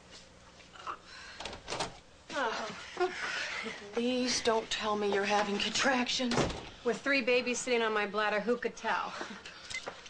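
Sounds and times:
door shutting: 1.4 - 2.0, 6.2 - 6.7.

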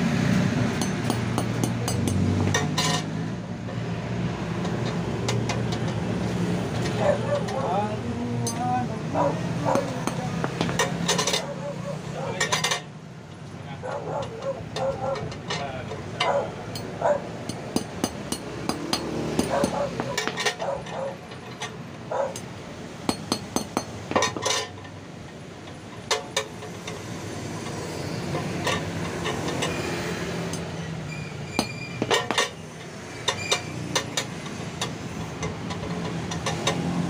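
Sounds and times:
hammer tapping on metal: 0.8 - 3.1, 8.4 - 11.6, 13.9 - 21.5, 22.2 - 24.9, 31.6 - 32.6.

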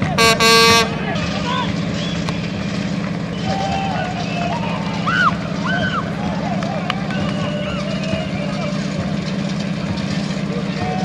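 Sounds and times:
horn blasts: 0.0 - 2.6
crowd shouting: 0.0 - 11.0.

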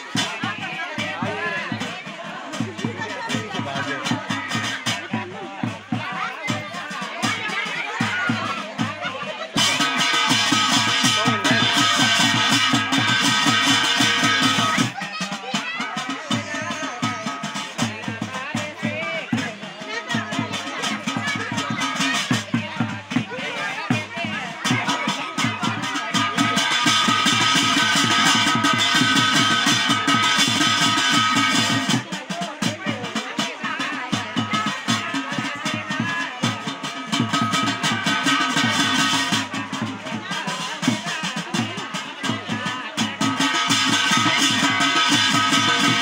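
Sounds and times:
rhythmic drumming: 0.0 - 46.0.

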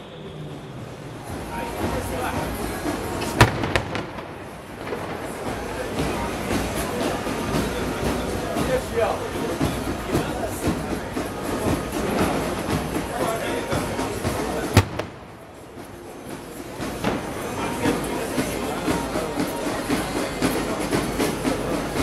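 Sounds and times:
crowd noise: 0.0 - 22.0
sharp bangs: 14.6 - 15.6.

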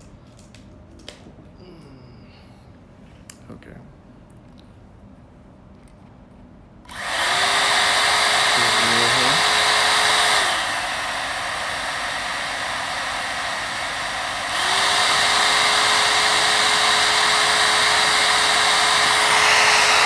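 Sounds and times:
hot air brush fan whine: 6.8 - 20.0.

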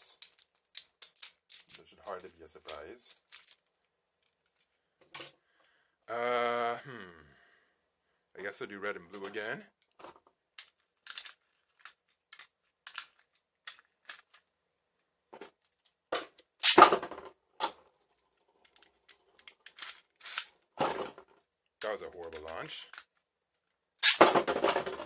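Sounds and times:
plastic clicks and rattles: 0.0 - 5.3, 9.2 - 14.5, 18.6 - 23.2
spinning top launch: 16.6 - 17.2, 24.0 - 24.9.

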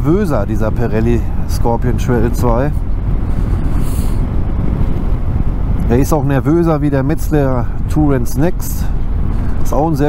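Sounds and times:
motorcycle engine cruising: 0.0 - 10.0
rushing wind: 0.0 - 10.0.

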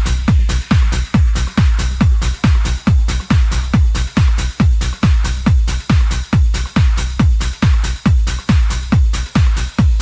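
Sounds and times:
heavy kick drum: 0.0 - 10.0
techno dance music: 0.0 - 10.0.

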